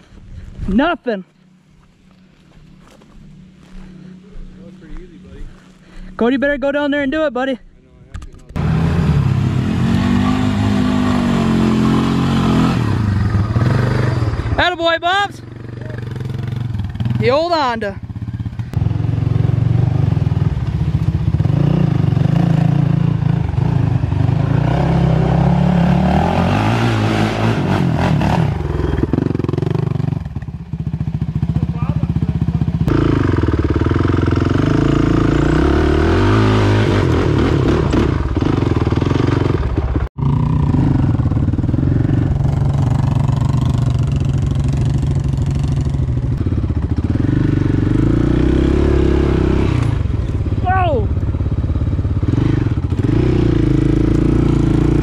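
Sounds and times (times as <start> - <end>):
atv engine revving: 8.2 - 55.0.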